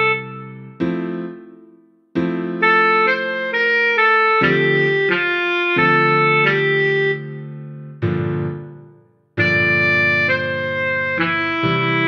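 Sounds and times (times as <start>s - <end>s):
tenor saxophone: 0.0s - 0.8s, 2.6s - 7.4s, 9.4s - 12.0s
piano chords: 0.0s - 12.0s.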